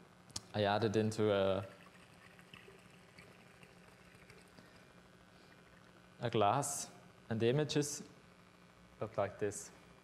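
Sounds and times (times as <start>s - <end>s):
liquid poured into a glass: 1.5s - 4.8s.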